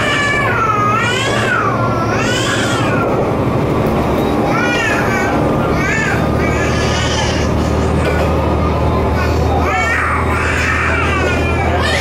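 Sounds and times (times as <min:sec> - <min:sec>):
railcar rumbling along track: 0:00.0 - 0:12.0.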